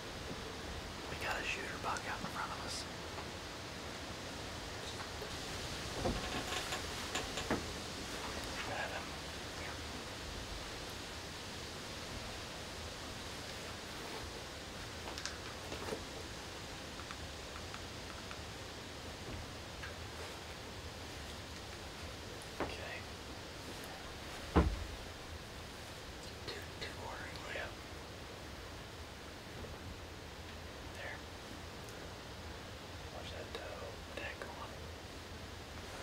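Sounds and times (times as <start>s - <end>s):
faint rustles: 0.0s - 36.0s
low background hiss: 0.0s - 36.0s.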